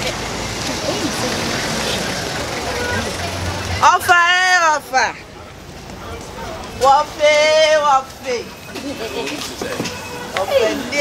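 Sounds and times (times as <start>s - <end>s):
traffic rushing: 0.0s - 11.0s.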